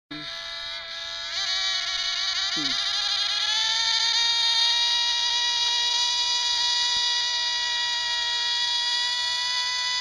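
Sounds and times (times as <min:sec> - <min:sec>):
model aircraft engines whining: 0:00.1 - 0:10.0.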